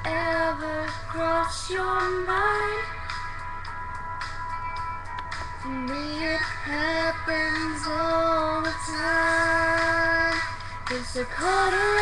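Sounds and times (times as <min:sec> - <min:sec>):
woman singing: 0:00.0 - 0:03.0, 0:05.6 - 0:12.0.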